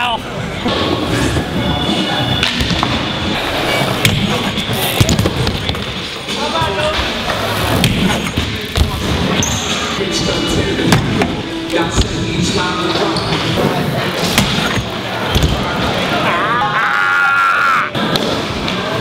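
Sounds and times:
bikes and skateboards rolling on ramps: 0.2s - 16.3s.

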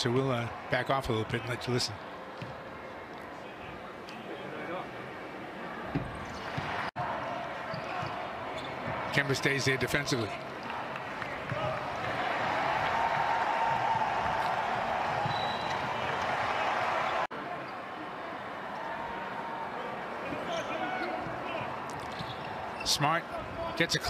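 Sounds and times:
players' voices: 0.0s - 24.0s.

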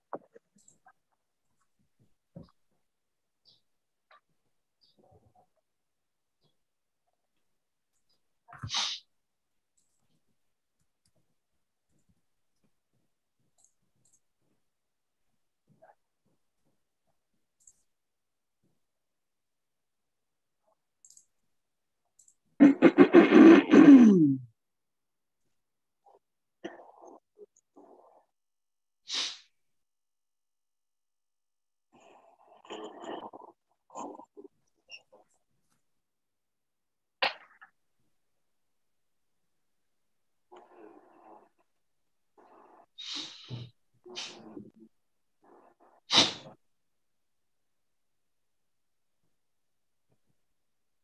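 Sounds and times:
loud sharp sneeze: 8.6s - 9.0s, 22.6s - 24.4s, 46.1s - 46.5s.

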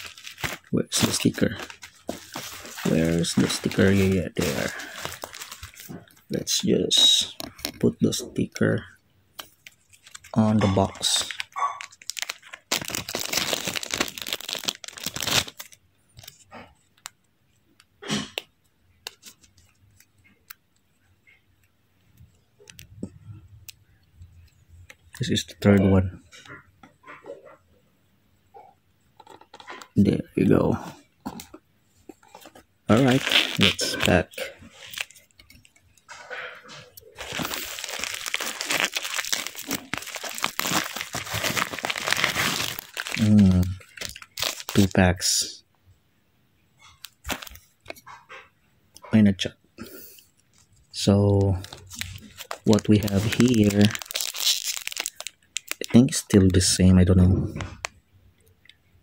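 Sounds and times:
bubble mailer tearing: 0.0s - 5.9s, 10.0s - 15.8s, 32.9s - 35.2s, 37.2s - 45.0s, 47.1s - 47.6s, 51.6s - 56.0s
plastic bag crinkling: 0.0s - 7.9s, 9.4s - 16.4s, 31.2s - 35.8s, 36.7s - 45.0s, 47.0s - 47.9s, 50.4s - 56.7s.

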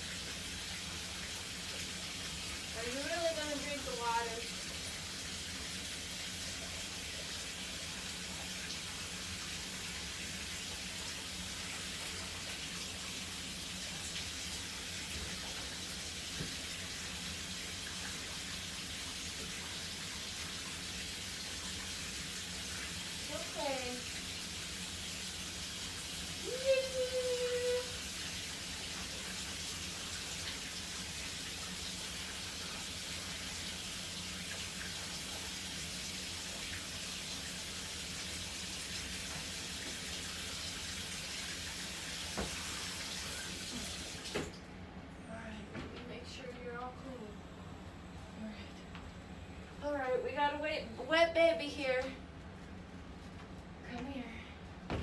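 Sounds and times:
water running into bathtub: 0.0s - 44.7s.

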